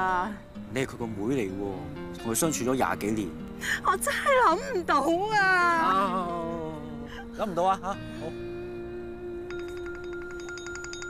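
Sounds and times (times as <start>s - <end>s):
mobile phone ringtone: 9.5s - 11.0s.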